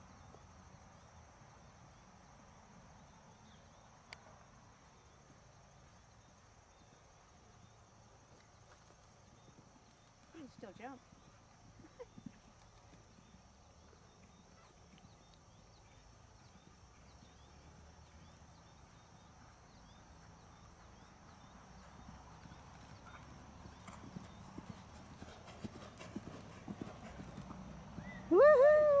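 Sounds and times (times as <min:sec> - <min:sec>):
horse hoofbeats on sand: 0:19.4 - 0:28.3.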